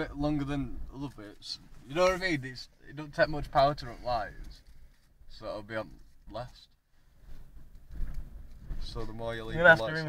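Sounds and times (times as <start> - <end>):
man speaking: 8.9 - 10.0.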